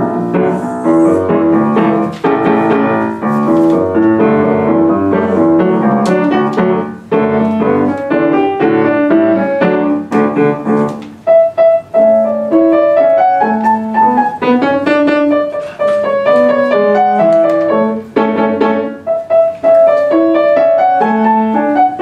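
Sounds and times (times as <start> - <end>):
solo piano tune: 0.0 - 22.0.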